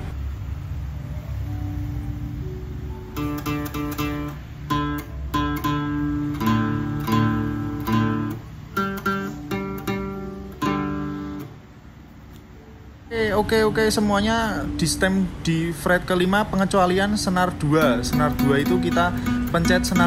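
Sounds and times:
acoustic guitar notes plucked: 0:01.8 - 0:20.0.

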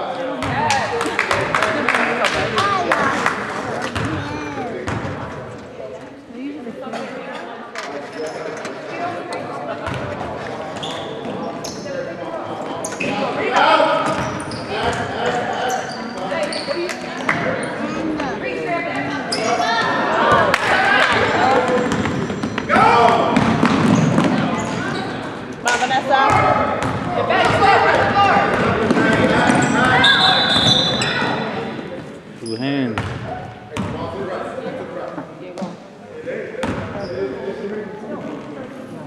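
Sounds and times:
voices in echoing gym: 0:00.0 - 0:39.0.

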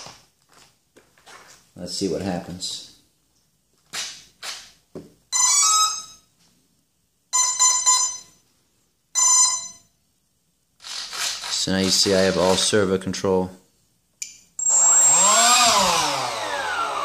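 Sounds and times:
scuffs: 0:00.0 - 0:01.8
motor start-up beeps: 0:14.6 - 0:17.0.

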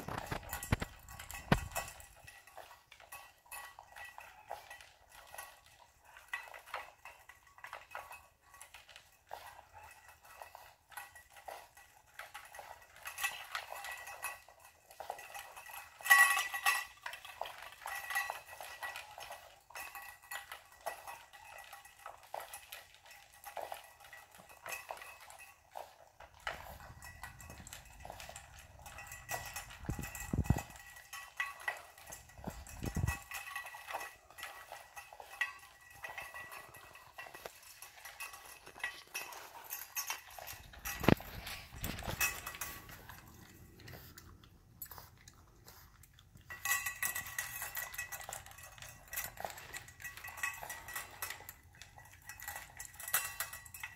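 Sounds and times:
dog eating from metal bowl: 0:00.0 - 0:53.9.

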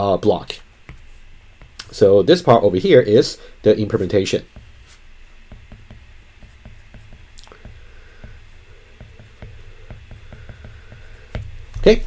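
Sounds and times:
faint low hum: 0:00.0 - 0:12.0
stylus tapping on glass screen: 0:09.0 - 0:11.5.

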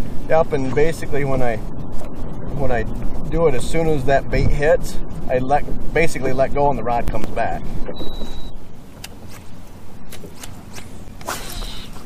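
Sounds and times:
low steady rumble: 0:00.0 - 0:12.0
fishing rod swishes: 0:09.0 - 0:12.0.

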